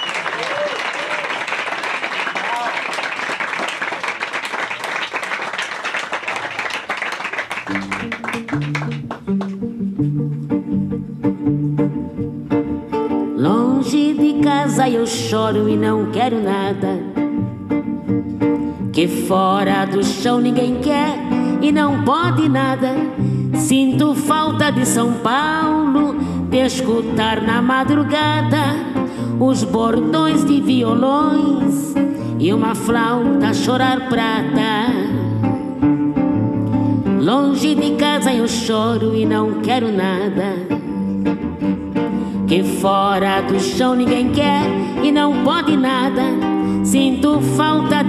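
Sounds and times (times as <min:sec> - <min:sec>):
acoustic guitar samba accompaniment: 0:07.6 - 0:48.0
woman singing: 0:13.1 - 0:48.0.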